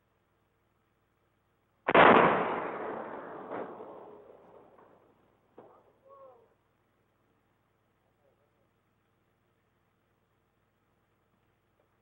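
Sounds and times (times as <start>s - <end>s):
loud demolition explosion: 1.9s - 4.2s.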